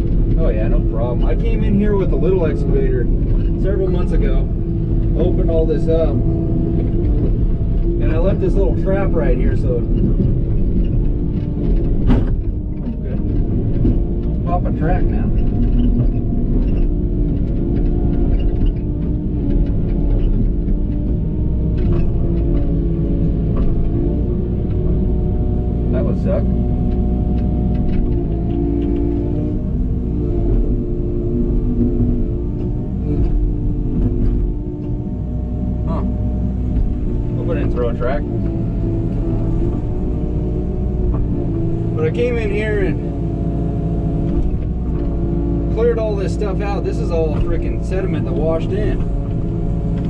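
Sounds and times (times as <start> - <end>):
diesel engine running: 0.0 - 50.0
sharp knocks and clanks: 9.8 - 25.3.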